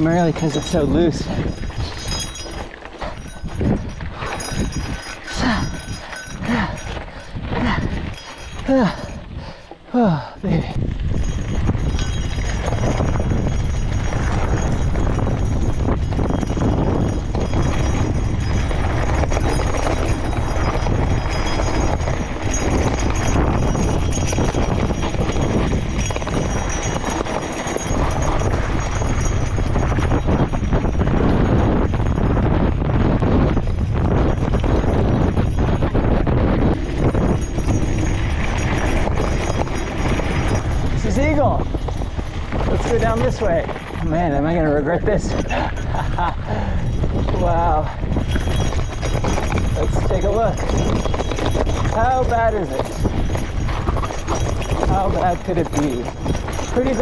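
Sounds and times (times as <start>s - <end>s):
bike tyres crunching on gravel: 0.0s - 9.4s, 10.8s - 44.2s
bike clattering over bumps: 0.0s - 10.0s, 10.6s - 57.0s
wind buffeting microphone: 0.0s - 57.0s.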